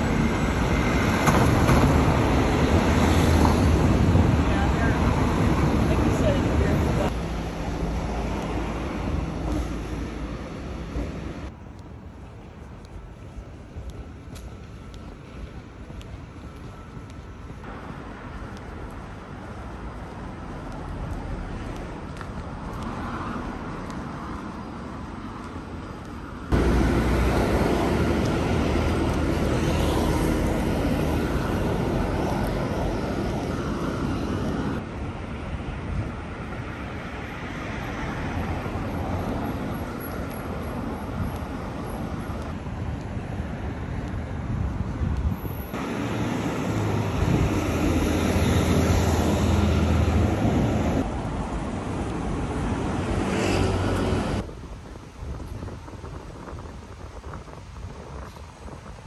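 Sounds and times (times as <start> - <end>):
road noise: 0.0 - 59.0
vehicle engines passing: 17.6 - 54.5.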